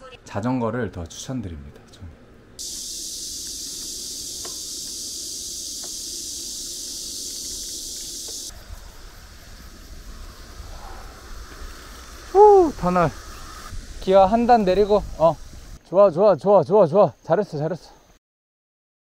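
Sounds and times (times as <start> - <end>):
cicada chorus buzzing: 2.6 - 18.2
wind rumble on microphone: 8.5 - 15.8.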